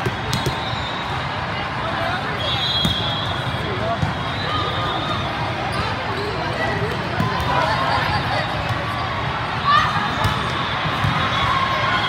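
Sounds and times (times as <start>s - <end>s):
volleyballs hit and bouncing: 0.0s - 0.7s, 6.7s - 7.7s
crowd chatter: 0.0s - 12.0s.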